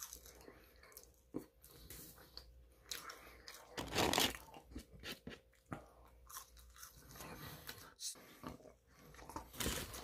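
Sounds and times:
chewing and crunching food: 0:00.0 - 0:10.0.

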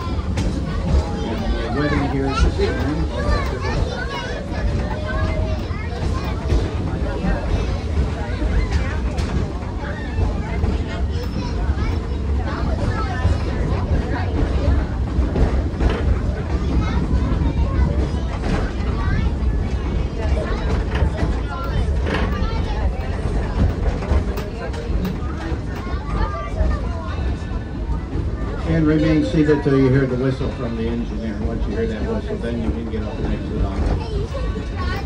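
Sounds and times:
passengers chatting: 0:00.0 - 0:35.0
train car rumbling: 0:00.0 - 0:35.0.

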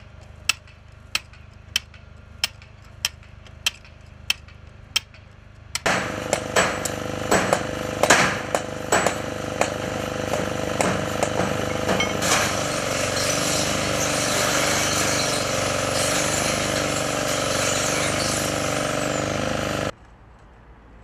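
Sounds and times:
hammer on chisel striking stone: 0:05.8 - 0:12.2
angle grinder cutting steel: 0:05.8 - 0:19.9
power tool running: 0:05.8 - 0:20.0.

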